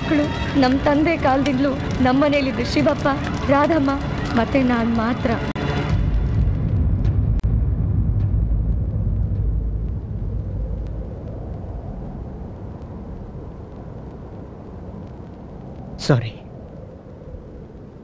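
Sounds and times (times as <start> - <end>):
deep low rumble: 0.0 - 18.0.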